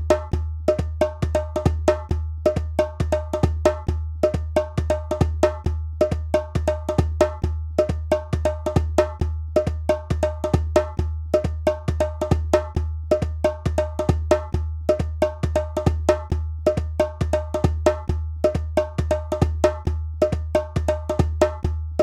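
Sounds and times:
hand drum strikes: 0.0s - 22.0s.

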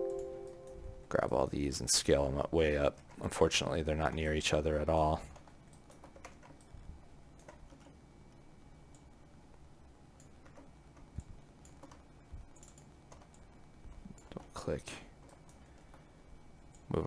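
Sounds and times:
computer keyboard and mouse clicks: 5.3s - 6.7s, 7.4s - 8.0s, 10.2s - 14.5s.

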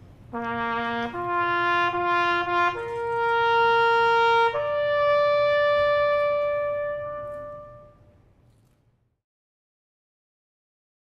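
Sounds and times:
trumpet holding high note: 0.3s - 8.2s.

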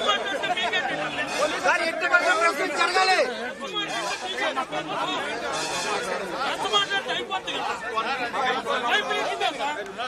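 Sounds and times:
men talking over one another: 0.0s - 10.0s.

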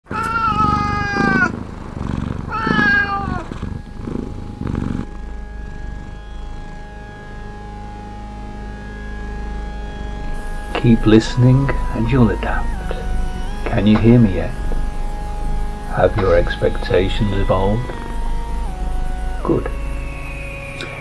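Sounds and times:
cat meowing: 0.0s - 1.7s, 2.3s - 5.0s, 17.3s - 18.2s
steady droning tone: 0.0s - 21.0s
soft low cat sounds: 0.1s - 6.8s, 10.7s - 19.8s.

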